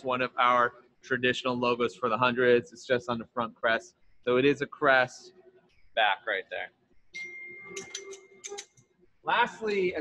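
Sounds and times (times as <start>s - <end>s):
faint steady high tone: 0.0s - 5.3s, 6.0s - 8.6s.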